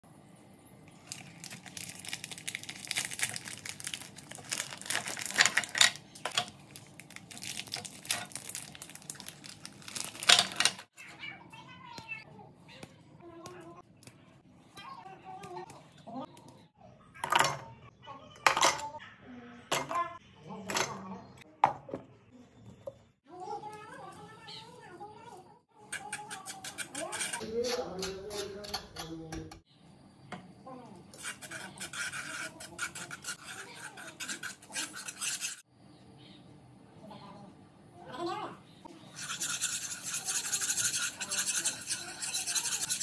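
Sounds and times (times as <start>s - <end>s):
plastic wrapper crinkling: 0.9s - 10.9s.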